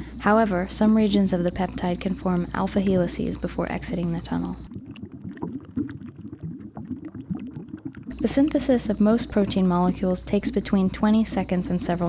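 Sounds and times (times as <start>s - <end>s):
low bubbling and gurgling: 0.0s - 12.0s.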